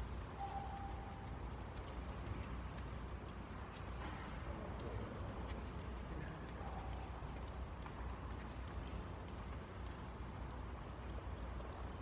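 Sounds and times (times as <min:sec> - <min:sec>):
light clicks and taps: 0:00.0 - 0:12.0
steady low hum: 0:00.0 - 0:12.0.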